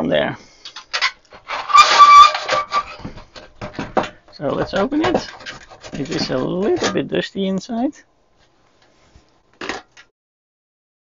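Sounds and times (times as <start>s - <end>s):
instrument handling scrape: 0.6s - 3.5s.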